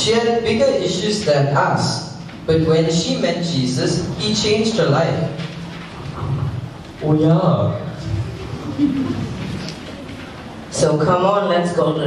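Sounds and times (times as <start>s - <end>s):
microphone handling rumble: 0.0s - 10.8s.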